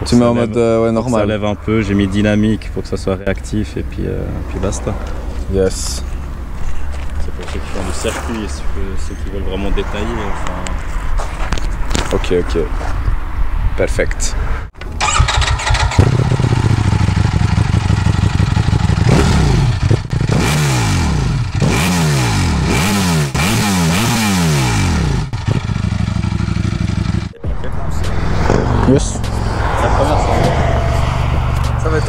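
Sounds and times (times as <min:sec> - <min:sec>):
motorcycle engine idling and revving: 0:14.8 - 0:32.0.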